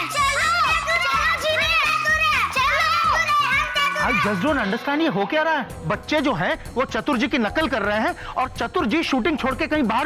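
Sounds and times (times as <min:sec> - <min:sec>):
background music with beat: 0:00.0 - 0:10.0.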